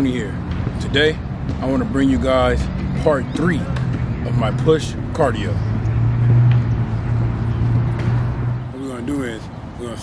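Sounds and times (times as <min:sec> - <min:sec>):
outdoor traffic noise: 0:00.0 - 0:10.0
vehicle engine hum: 0:00.0 - 0:10.0.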